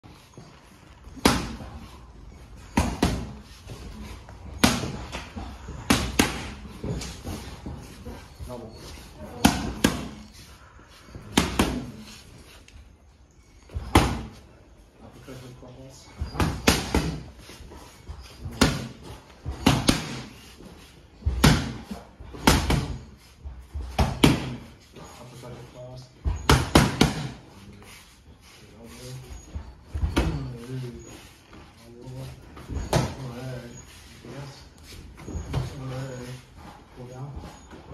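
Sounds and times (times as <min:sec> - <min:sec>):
boxing gloves hitting focus mitts: 0:01.1 - 0:02.0, 0:02.6 - 0:08.1, 0:08.8 - 0:10.3, 0:16.2 - 0:17.5, 0:18.4 - 0:20.5, 0:21.2 - 0:24.8, 0:26.2 - 0:27.5.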